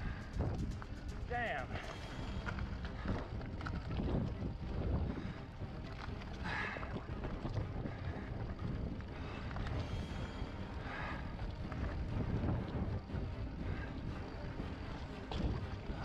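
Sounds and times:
wind buffeting microphone: 0:00.0 - 0:16.0.

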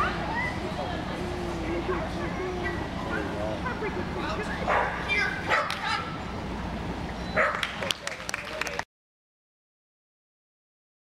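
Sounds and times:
steady low hum: 0:00.0 - 0:08.2
dog barking: 0:04.7 - 0:06.0, 0:07.4 - 0:07.7.

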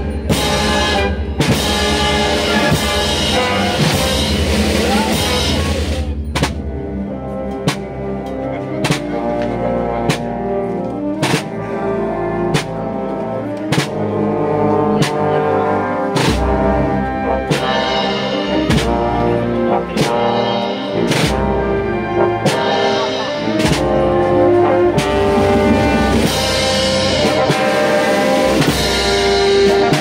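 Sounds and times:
drum strokes: 0:00.0 - 0:07.0, 0:17.5 - 0:30.0
wind band playing a slow march: 0:00.0 - 0:30.0.

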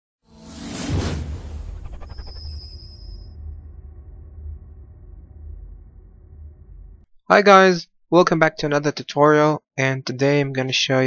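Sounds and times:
whoosh sound effect: 0:00.3 - 0:07.1
deep bass rumble: 0:00.4 - 0:07.1.

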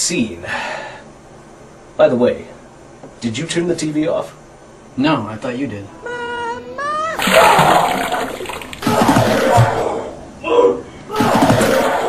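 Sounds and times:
person vomiting wet gushing: 0:06.1 - 0:09.9.

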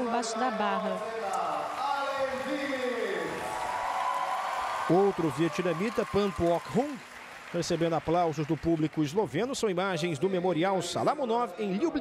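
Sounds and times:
crowd applauding: 0:00.0 - 0:10.7.

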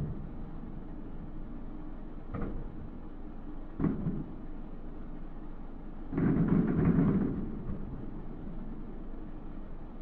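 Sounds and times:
steady low rumble: 0:00.0 - 0:01.7.

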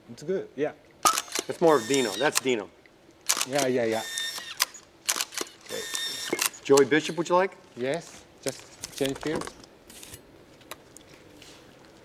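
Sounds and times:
camera shutter clicks: 0:01.0 - 0:02.6, 0:03.2 - 0:06.9.

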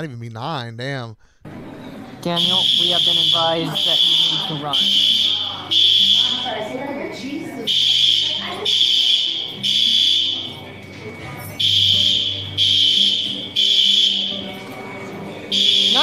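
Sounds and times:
fire alarm beeping: 0:02.3 - 0:06.7, 0:07.6 - 0:14.7, 0:15.4 - 0:16.0.

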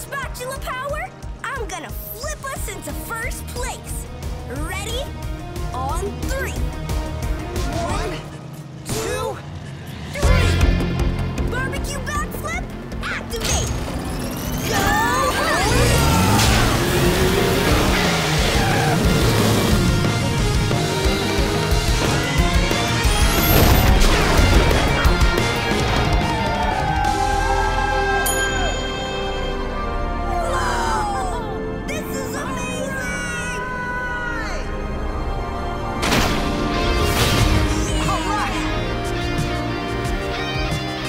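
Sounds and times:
action music: 0:00.0 - 0:41.0
engine-like sweeps: 0:05.1 - 0:28.2.

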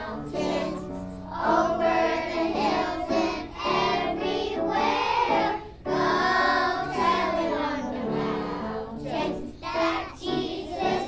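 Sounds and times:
young children singing carol: 0:00.0 - 0:11.0.

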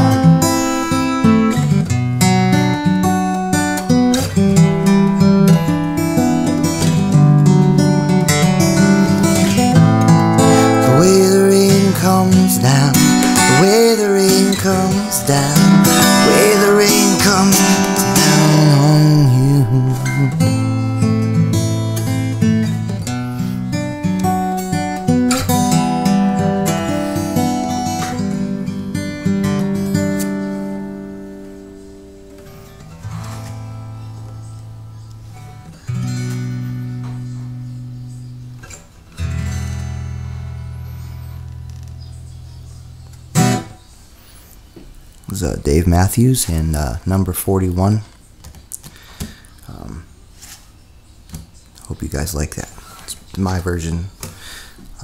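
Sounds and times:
acoustic guitar playing: 0:00.0 - 0:50.5.

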